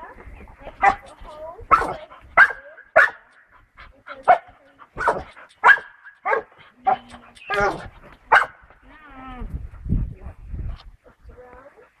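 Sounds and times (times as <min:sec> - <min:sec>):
dog barking: 0:00.8 - 0:01.0, 0:01.7 - 0:03.3, 0:05.0 - 0:08.6.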